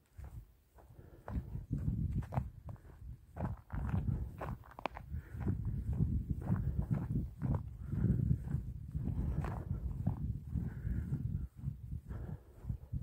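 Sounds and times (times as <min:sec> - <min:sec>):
footsteps on stony path: 0:00.0 - 0:13.0
wind rumble on microphone: 0:00.2 - 0:13.0.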